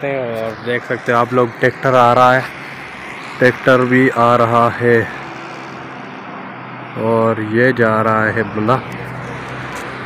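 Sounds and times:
distant road traffic: 0.0s - 10.0s.

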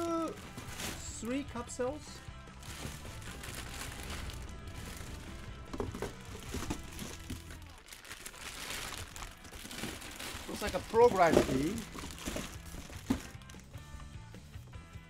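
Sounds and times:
plastic bags crinkling: 0.0s - 1.6s, 2.6s - 13.8s
background music: 0.0s - 15.0s.

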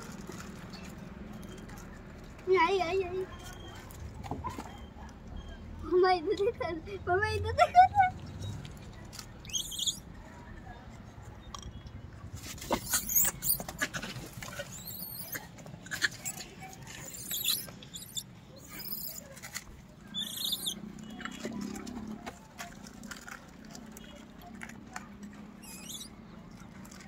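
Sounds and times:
monkey squealing: 9.4s - 10.0s, 12.7s - 13.9s, 14.6s - 19.3s, 20.1s - 20.8s, 25.6s - 26.2s.

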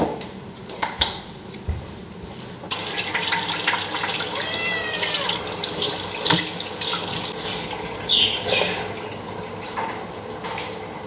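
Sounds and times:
water splashing: 2.7s - 7.7s
tap water running into sink: 2.7s - 11.0s.

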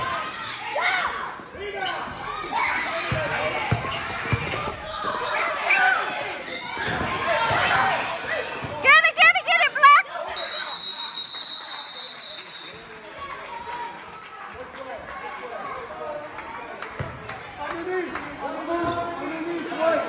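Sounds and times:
basketball shoes squeaking: 1.1s - 5.8s, 6.4s - 8.8s.

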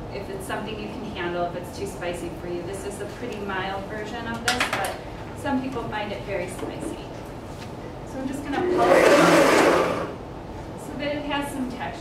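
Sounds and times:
indistinct voices: 8.4s - 10.2s.

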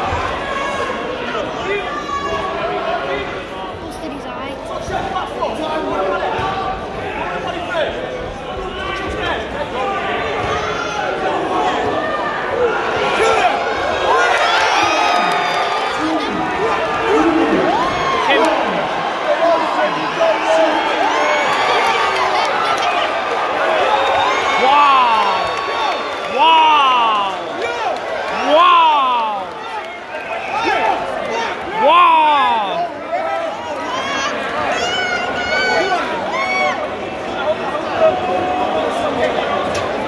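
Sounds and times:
crowd shouting and cheering: 0.0s - 40.0s.

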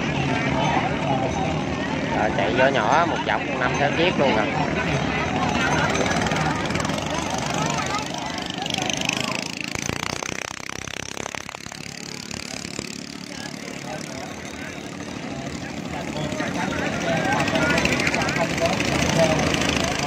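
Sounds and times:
small boat engines running: 0.0s - 20.0s.

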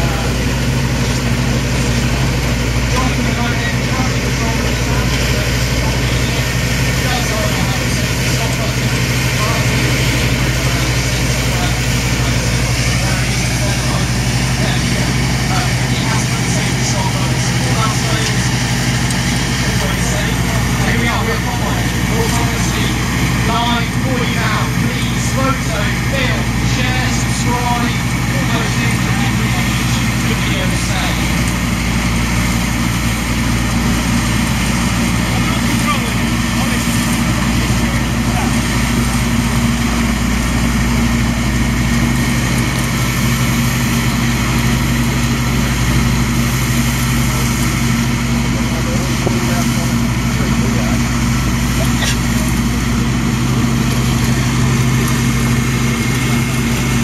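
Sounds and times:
combine harvester engine droning: 0.0s - 57.0s.

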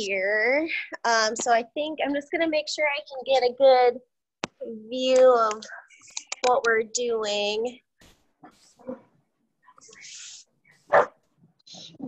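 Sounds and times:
dog bark: 10.9s - 11.2s.

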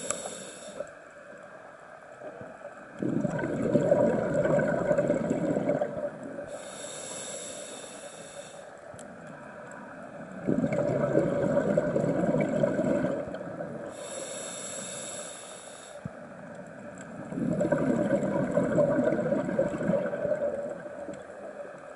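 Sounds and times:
regulator inhalation hiss: 0.0s - 1.0s, 6.5s - 8.8s, 13.9s - 16.2s
bubbling exhalation: 3.0s - 6.2s, 10.4s - 13.8s, 17.3s - 21.1s.

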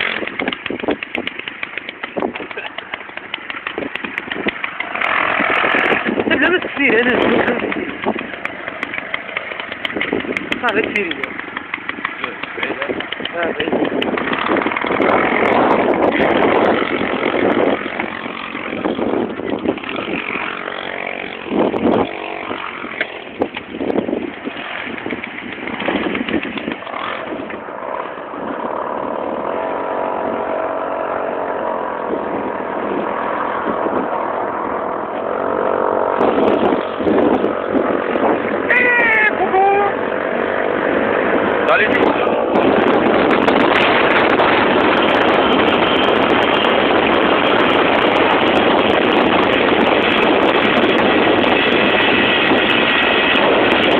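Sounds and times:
moped engine running: 0.0s - 53.9s
people's voices: 38.7s - 40.0s.

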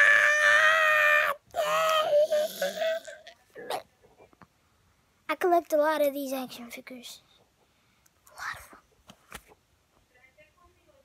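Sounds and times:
boy making choking noise: 1.6s - 3.8s.

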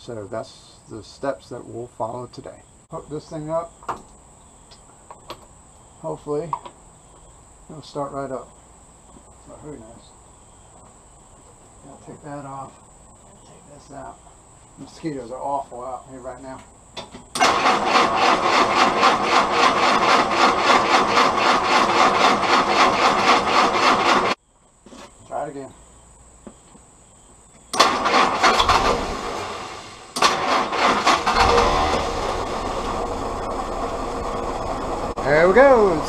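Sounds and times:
engine cranked by starter: 17.3s - 24.4s, 27.7s - 36.0s
engine running low rumble: 30.7s - 36.0s.

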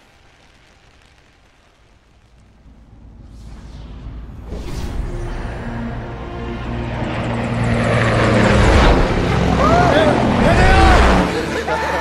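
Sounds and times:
rushing noise: 0.0s - 12.0s.

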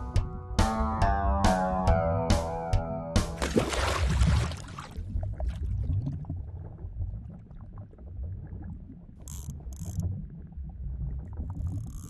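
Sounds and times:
low underwater rumble: 4.0s - 12.0s
faint mechanical clicking: 9.2s - 10.1s.

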